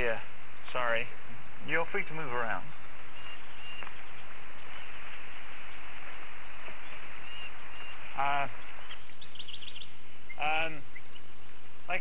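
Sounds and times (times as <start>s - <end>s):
steady forest hiss: 0.0s - 12.0s
faint high bird chirps: 1.4s - 11.4s.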